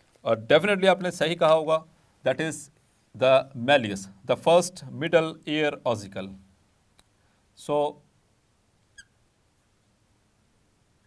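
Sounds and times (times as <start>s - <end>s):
marker squeaking on glass: 8.9s - 9.2s.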